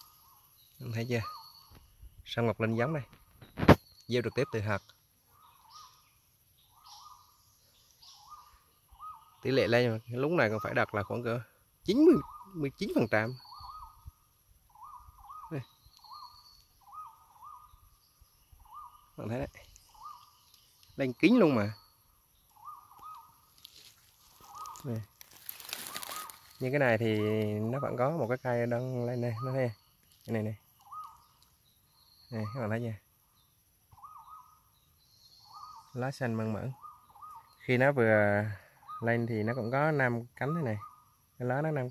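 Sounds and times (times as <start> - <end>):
bird whistled calls: 0.0 - 1.9, 3.5 - 11.2, 11.9 - 23.5, 24.4 - 25.0, 30.8 - 32.7, 33.9 - 36.0, 36.6 - 37.8, 38.6 - 41.1.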